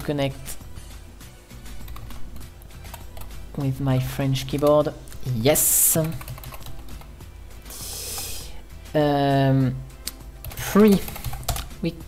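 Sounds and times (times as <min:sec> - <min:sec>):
keyboard keys clicking: 0:06.0 - 0:07.1, 0:10.4 - 0:11.7.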